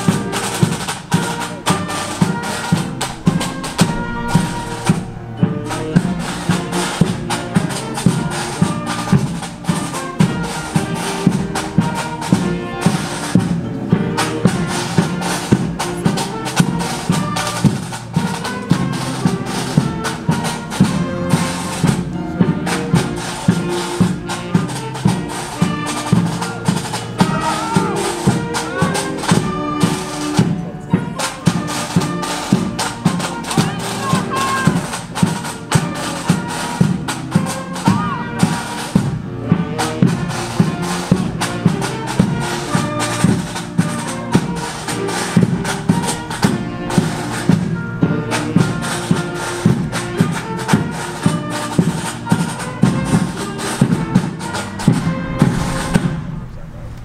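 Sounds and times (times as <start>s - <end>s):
bagpipes: 0.0s - 56.0s
snare and bass drums: 0.0s - 57.0s.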